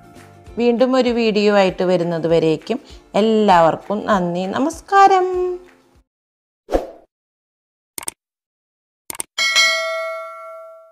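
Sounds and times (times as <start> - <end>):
quick double clicks: 9.1 - 9.3
notification bell chime: 9.4 - 10.9.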